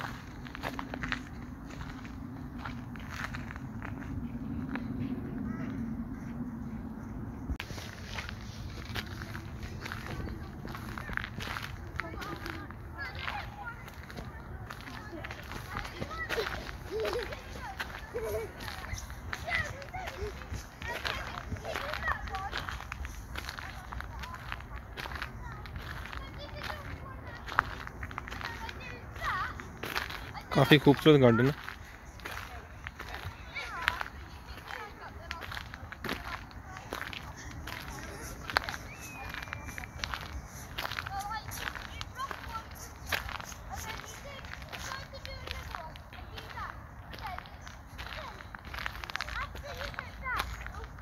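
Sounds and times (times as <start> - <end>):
steady low rumble: 0.0 - 30.5
footsteps: 0.0 - 51.0
distant people talking: 8.2 - 51.0.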